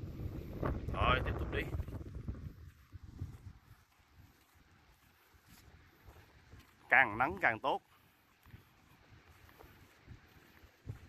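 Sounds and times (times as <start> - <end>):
wind buffeting microphone: 0.0 - 7.2, 8.4 - 11.0.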